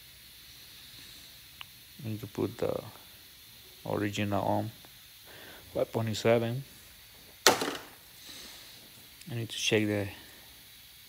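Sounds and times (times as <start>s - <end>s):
faint hiss: 0.0s - 11.0s.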